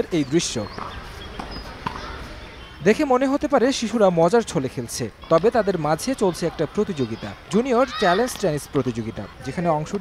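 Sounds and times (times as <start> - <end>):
faint court background noise: 0.0 - 10.0
tennis ball knock: 0.7 - 2.2.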